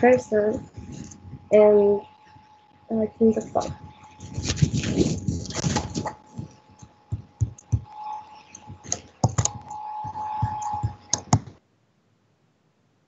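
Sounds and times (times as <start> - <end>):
faint steady hum: 0.0 - 13.0
typing on computer keyboard: 6.8 - 7.9, 8.6 - 11.5.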